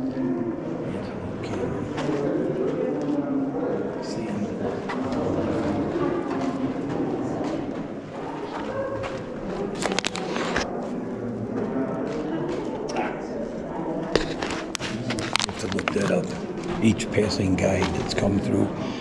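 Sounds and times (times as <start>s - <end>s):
people chattering: 0.0s - 19.0s.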